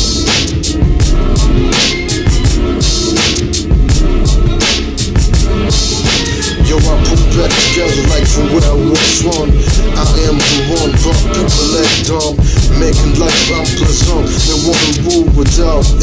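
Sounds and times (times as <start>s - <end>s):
hip hop drum beat: 0.0s - 16.0s
rapping: 6.4s - 16.0s.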